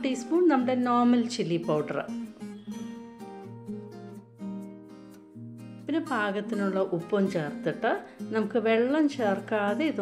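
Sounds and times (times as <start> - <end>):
acoustic guitar plucking: 1.7 - 10.0.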